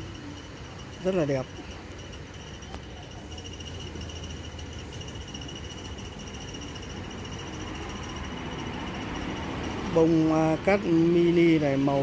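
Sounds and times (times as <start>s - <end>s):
pulsing insect trill: 0.0s - 12.0s.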